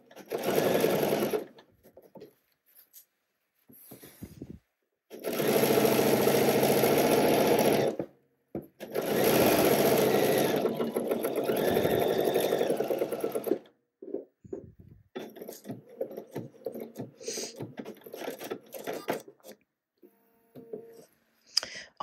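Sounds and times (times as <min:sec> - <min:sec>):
sewing machine stitching: 0:00.0 - 0:01.6, 0:05.1 - 0:08.1, 0:08.8 - 0:13.7, 0:15.1 - 0:19.6.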